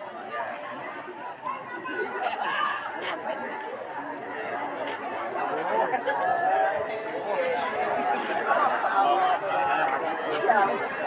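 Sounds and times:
men chattering: 5.3s - 11.0s.

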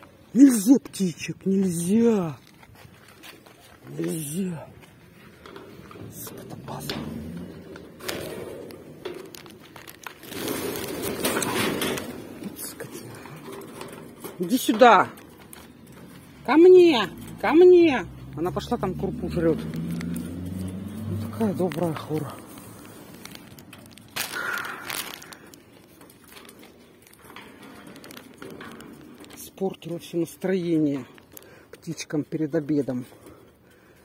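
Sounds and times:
close rustling and crunching: 0.0s - 34.0s
birds flapping wings: 21.7s - 26.6s.

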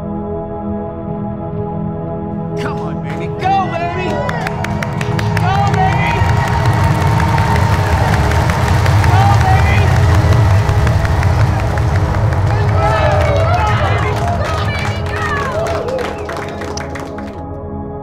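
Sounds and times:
music: 0.0s - 18.0s
crowd cheering and clapping: 2.6s - 17.5s
rocket launch rumble: 4.8s - 15.8s.

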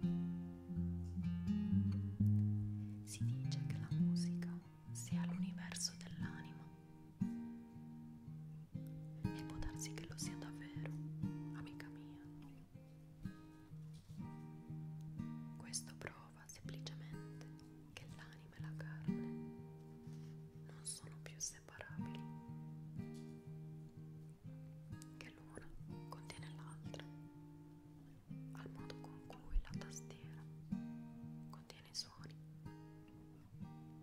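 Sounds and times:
acoustic guitar plucking: 0.0s - 34.0s
soft whispering: 3.0s - 6.8s, 9.3s - 12.6s, 15.6s - 19.3s, 20.0s - 22.3s, 25.1s - 27.3s, 28.0s - 30.6s, 31.4s - 32.4s.

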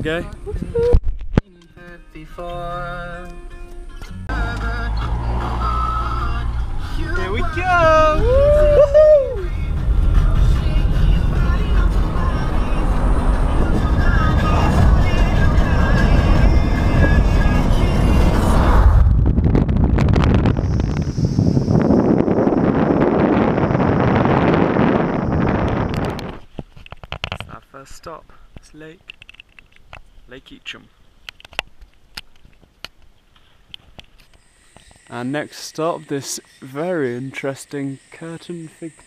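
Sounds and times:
car engine and road rumble: 0.0s - 35.1s
rush of air and tyre noise: 4.3s - 27.6s.

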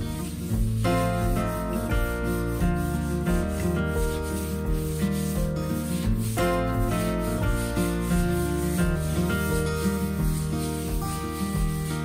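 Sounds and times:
background music: 0.0s - 12.0s
sanding block rasping on wall: 0.0s - 12.0s.

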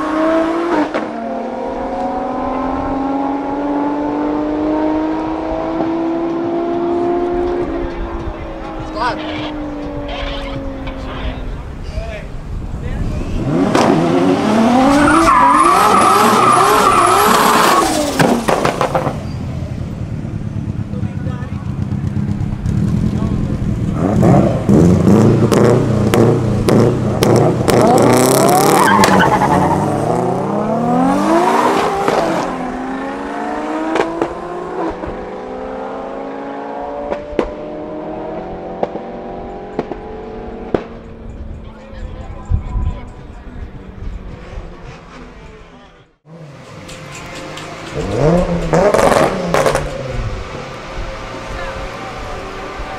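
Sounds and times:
cars accelerating away: 0.0s - 11.8s, 13.1s - 42.3s, 46.3s - 52.9s
drag car engines revving: 0.0s - 52.9s
exhaust pops and crackles: 18.1s - 19.7s, 20.7s - 24.0s, 39.7s - 40.1s, 40.7s - 41.7s.

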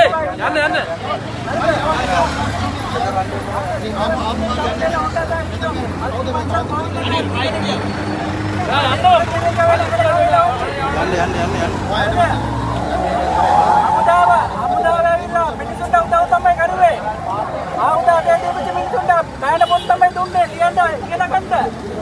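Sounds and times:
men's voices talking loudly: 0.0s - 22.0s
vehicle engine humming: 0.7s - 22.0s.

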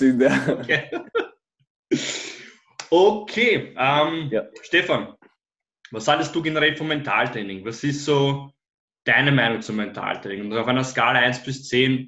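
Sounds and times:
person speaking: 0.0s - 1.2s, 1.9s - 5.3s
person exhaling: 1.9s - 2.6s.

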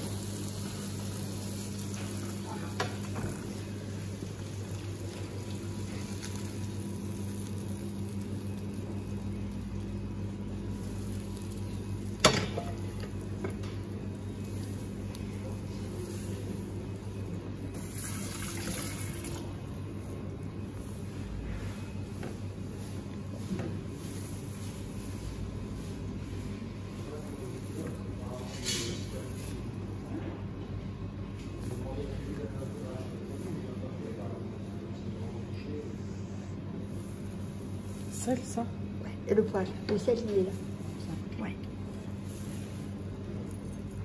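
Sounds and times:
fish sizzling in a pan: 0.0s - 13.4s.

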